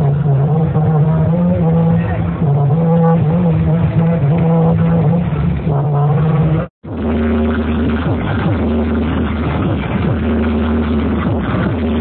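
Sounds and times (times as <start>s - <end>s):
wavering melody over low drone: 0.0s - 9.4s
electronic dance music with heavy bass: 0.0s - 12.0s.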